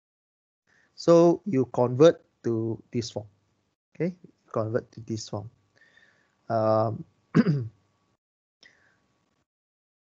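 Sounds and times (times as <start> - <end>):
man clearing his throat: 6.7 - 7.7.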